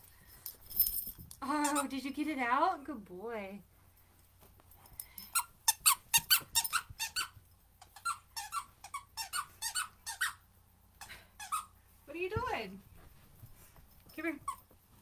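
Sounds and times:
squeaky dog toy squeaking: 5.3s - 10.4s, 11.4s - 11.8s.

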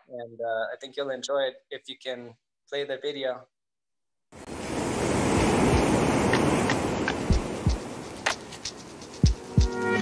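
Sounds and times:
ocean waves washing in: 4.4s - 10.0s.

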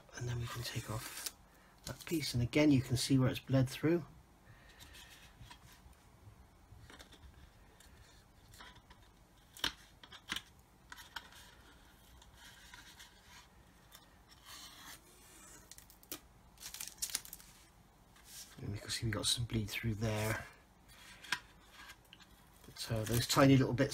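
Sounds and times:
masking tape peeling rustle: 0.5s - 2.2s, 11.0s - 18.6s, 21.7s - 23.6s
plastic model being handled: 4.7s - 6.0s, 6.8s - 18.9s, 19.6s - 23.9s.

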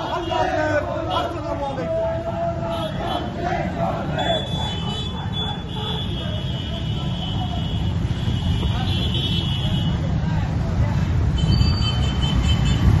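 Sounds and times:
crowd voices: 0.0s - 12.2s
motorcycle and traffic engines: 0.0s - 13.0s.

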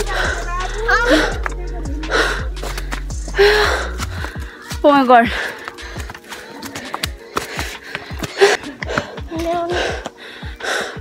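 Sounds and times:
background music low notes: 0.0s - 11.0s
person gasping breaths: 2.1s - 11.0s.

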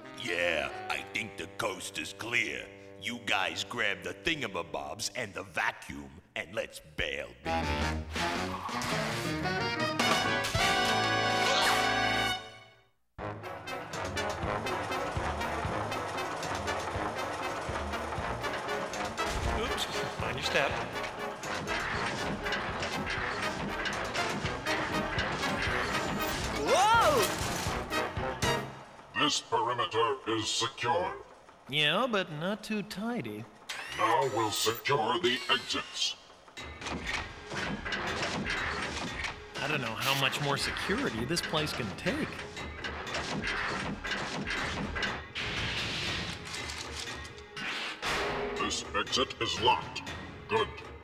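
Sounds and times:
background music: 0.0s - 51.0s
metallic grinding of door: 13.5s - 26.6s, 33.5s - 48.0s
robot mechanical whirring: 33.7s - 36.0s.

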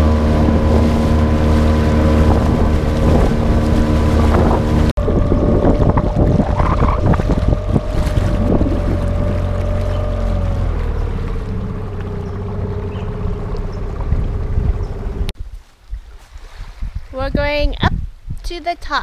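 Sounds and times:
boat motor running: 0.0s - 15.4s
water splashing against hull: 0.0s - 17.7s
wind buffeting microphone: 0.0s - 19.0s.

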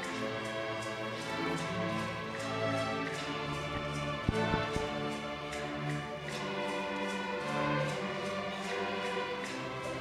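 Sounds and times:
maracas and shaker beat: 0.0s - 10.0s
string orchestra sustained chords: 0.0s - 10.0s.

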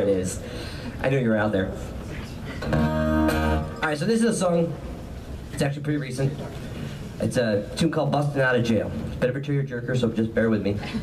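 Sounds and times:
acoustic guitar chord strummed: 2.7s - 3.8s.

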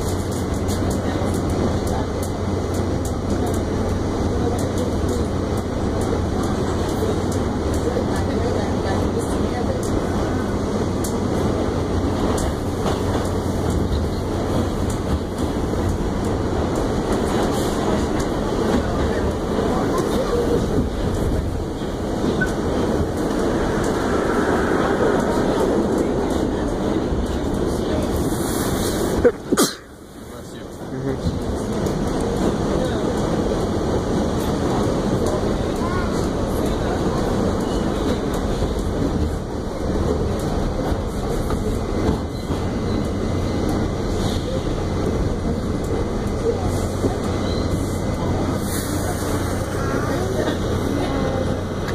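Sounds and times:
subway wheels rumbling on rail: 0.0s - 51.9s.

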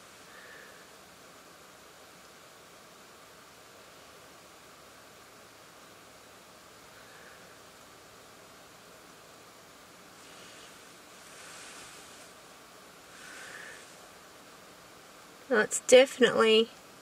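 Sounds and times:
car interior hiss: 0.0s - 4.6s, 6.2s - 16.0s.

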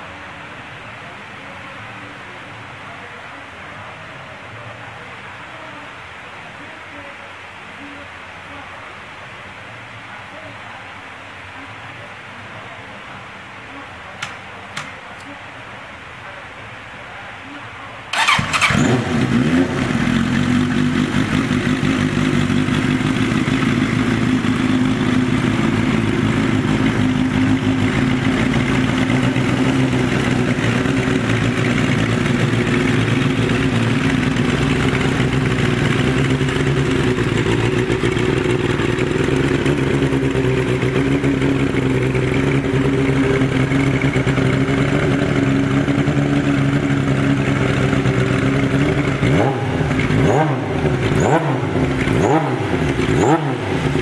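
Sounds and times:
motorcycle engine starting and running: 18.1s - 54.0s.

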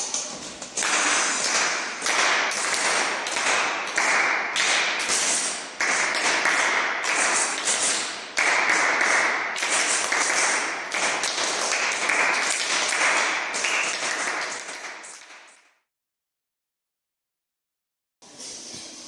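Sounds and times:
children clapping hands: 0.6s - 15.6s.

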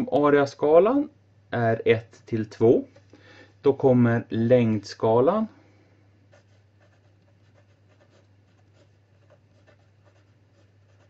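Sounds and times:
pen scratching on paper: 6.3s - 11.0s.

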